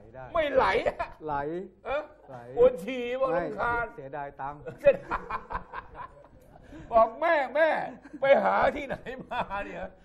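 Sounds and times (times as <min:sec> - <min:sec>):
man speaking: 0:00.0 - 0:05.2, 0:06.8 - 0:10.0.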